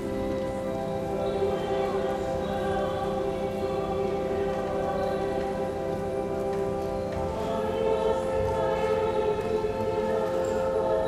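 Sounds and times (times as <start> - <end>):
held church music chords: 0.0 - 11.0.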